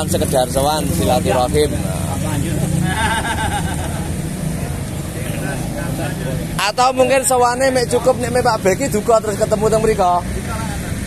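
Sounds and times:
motorcycles passing: 0.0 - 11.0.

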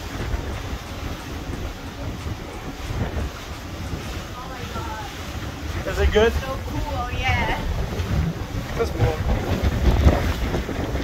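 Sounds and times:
wind buffeting microphone: 0.0 - 11.0
woman's voice: 4.3 - 5.2, 6.6 - 7.8.

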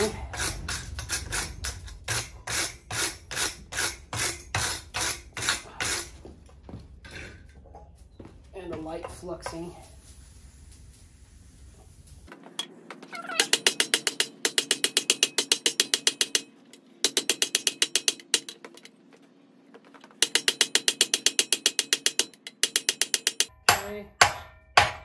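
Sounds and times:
hammer striking hot steel: 20.2 - 25.0.

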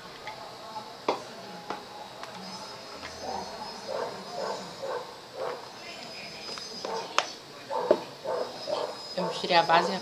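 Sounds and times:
dog barking: 3.3 - 5.6, 6.9 - 10.0.

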